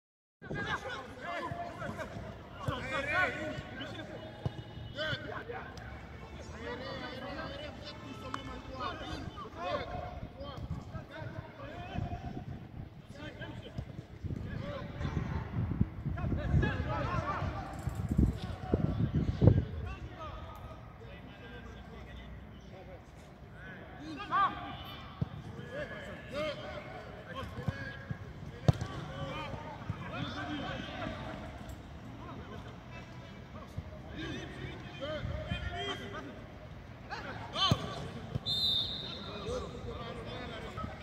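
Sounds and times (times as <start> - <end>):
distant shouts of footballers: 0.4 - 13.7, 23.6 - 31.6, 37.1 - 41.0
football being kicked: 28.6 - 29.1, 37.7 - 38.4.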